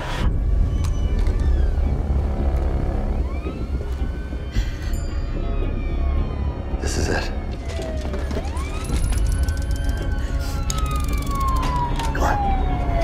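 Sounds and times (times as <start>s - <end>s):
deep bass drone: 0.0s - 7.4s.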